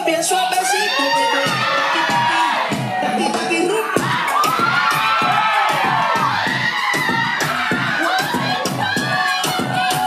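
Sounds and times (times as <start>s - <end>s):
dance track with steady beat: 0.0s - 10.0s
onlookers cheering and whooping: 0.4s - 10.0s.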